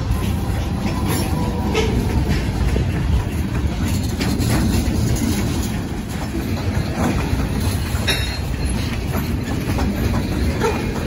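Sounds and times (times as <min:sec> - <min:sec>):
freight train rumbling past: 0:00.0 - 0:11.0
wheels clacking over rail joints: 0:00.0 - 0:11.0.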